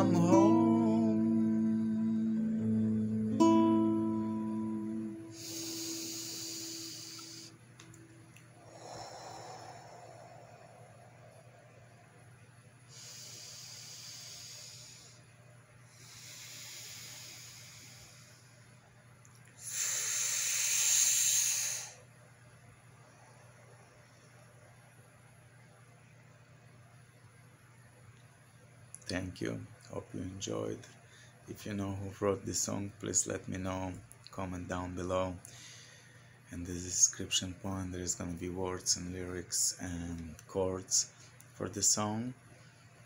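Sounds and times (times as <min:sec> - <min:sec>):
acoustic guitar chord ringing: 0:00.0 - 0:06.0
steady hiss: 0:00.0 - 0:22.1, 0:29.2 - 0:42.8
person breathing out hard: 0:05.3 - 0:07.6, 0:08.6 - 0:11.5.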